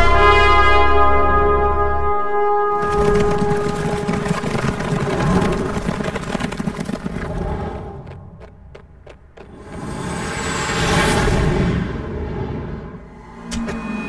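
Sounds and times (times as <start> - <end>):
dense rumbling noise: 2.8 - 13.3
whoosh: 9.5 - 14.0.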